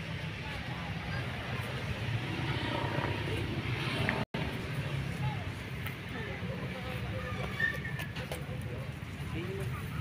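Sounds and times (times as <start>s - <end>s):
faint voices talking: 0.0s - 10.0s
steady low rumble: 1.3s - 5.8s.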